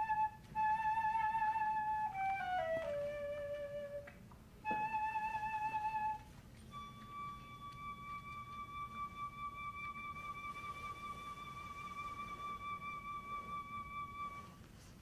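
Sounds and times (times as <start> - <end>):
flute holding high note: 0.0 - 15.0.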